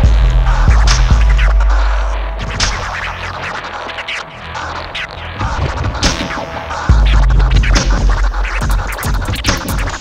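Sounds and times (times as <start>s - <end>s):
deep bass and kick drum: 0.0s - 2.8s, 6.9s - 9.8s
vinyl scratching: 0.0s - 10.0s.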